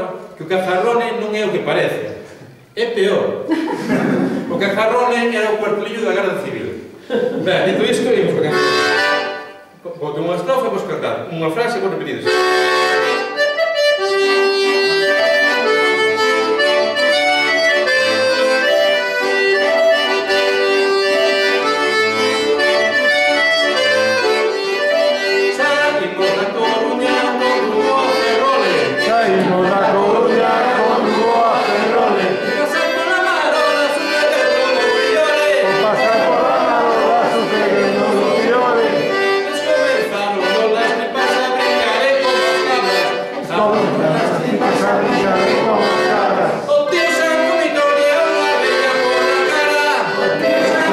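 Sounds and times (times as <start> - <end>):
button accordion folk tune: 7.6 - 9.8, 12.2 - 50.9
man singing: 25.5 - 50.9.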